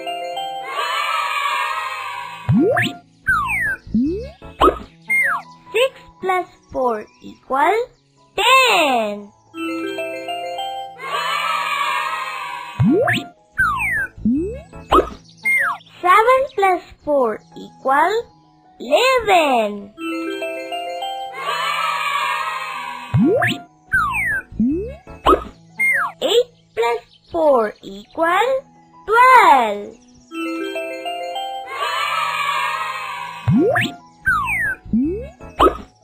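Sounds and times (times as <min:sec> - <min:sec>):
children's background music: 0:00.0 - 0:36.0.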